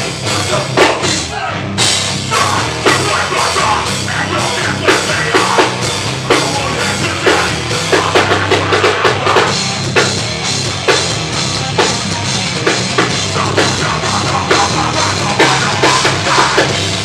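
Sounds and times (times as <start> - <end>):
heavy metal band playing: 0.0 - 17.0
pounding drum kit: 0.0 - 17.0.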